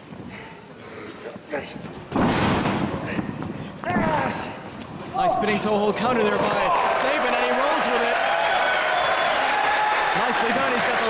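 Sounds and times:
crowd noise: 0:04.6 - 0:11.0.

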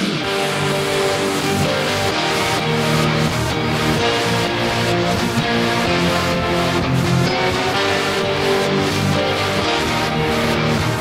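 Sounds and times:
guitar strumming chords: 0:00.0 - 0:11.0
piano: 0:00.0 - 0:11.0
strings: 0:00.0 - 0:11.0.

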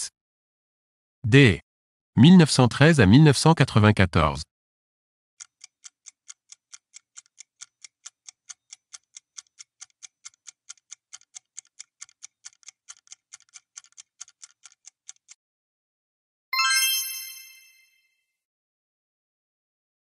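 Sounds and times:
fast clock ticks: 0:05.4 - 0:15.4.

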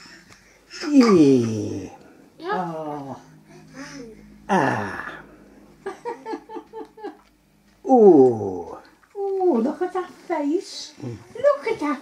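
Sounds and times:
baby vocalising: 0:00.7 - 0:05.3.

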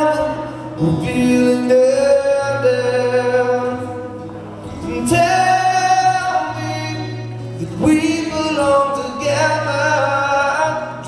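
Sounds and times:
acoustic guitar: 0:00.0 - 0:11.0
man singing: 0:00.0 - 0:11.0.

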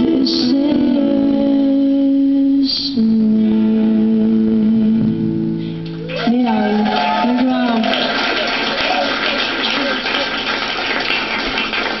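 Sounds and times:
applause and crowd noise: 0:06.0 - 0:12.0.

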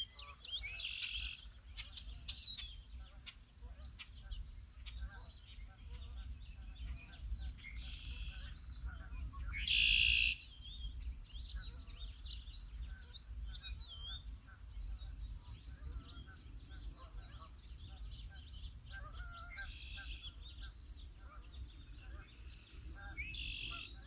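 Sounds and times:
birds chirping: 0:00.0 - 0:24.0
loud buzzy bird call: 0:09.5 - 0:10.5, 0:22.9 - 0:24.0.

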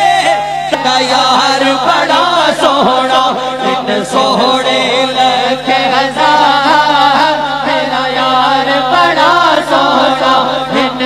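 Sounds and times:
man singing devotional song: 0:00.0 - 0:11.0
steady low hum: 0:00.0 - 0:11.0.

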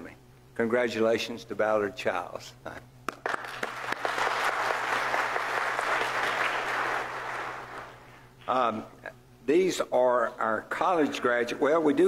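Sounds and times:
congregation applauding: 0:03.1 - 0:08.1.

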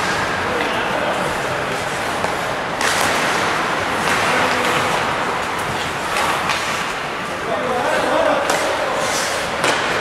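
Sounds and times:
hockey sticks and puck clacking: 0:00.0 - 0:10.0
skate blades scraping ice: 0:01.2 - 0:10.0.

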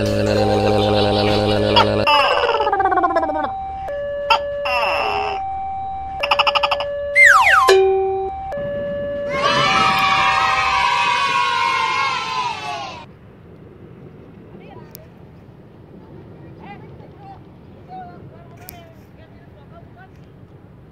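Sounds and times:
warbling trill: 0:00.0 - 0:10.9
faint outdoor background: 0:00.0 - 0:20.9
two alternating tones: 0:00.3 - 0:10.1
scream-like cry: 0:01.2 - 0:03.5, 0:04.6 - 0:05.4, 0:09.3 - 0:13.1
falling whistle: 0:02.1 - 0:12.7.

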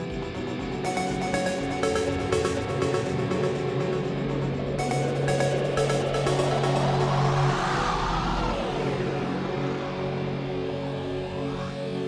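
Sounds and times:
electronic dance music synth tones: 0:00.0 - 0:09.2.

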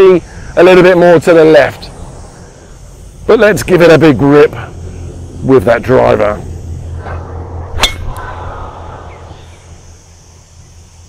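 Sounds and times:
hiss: 0:00.0 - 0:11.0.

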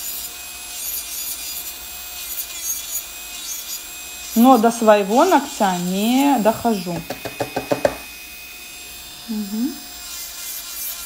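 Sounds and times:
nail drill grinding: 0:00.0 - 0:11.0.

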